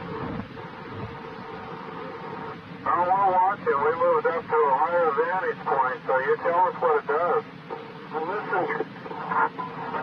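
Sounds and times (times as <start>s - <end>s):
steady hum: 0.0s - 10.0s
tape hiss: 0.0s - 10.0s.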